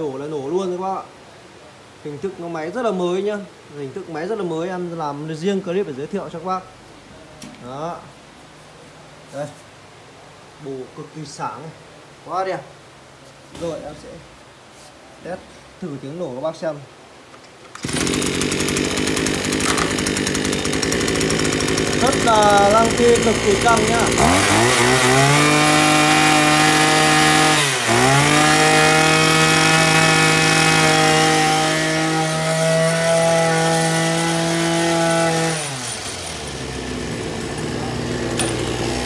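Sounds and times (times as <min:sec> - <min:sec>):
brush cutter engine running: 0:17.7 - 0:39.0.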